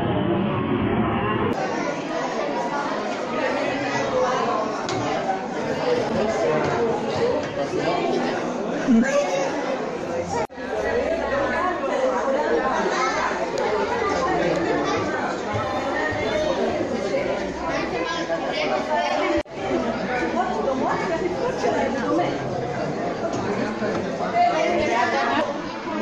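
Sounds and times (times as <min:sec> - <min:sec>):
voices chattering in a hall: 0:00.0 - 0:26.0.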